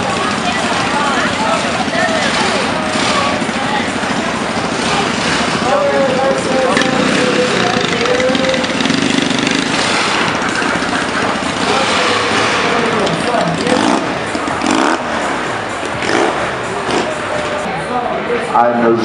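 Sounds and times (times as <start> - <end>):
motorcycle engine running: 0.0 - 18.1
crowd chatter: 0.0 - 19.0.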